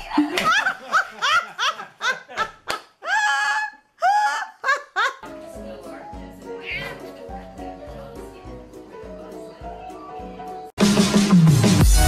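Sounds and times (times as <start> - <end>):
person laughing in high squeals: 3.0 - 5.2.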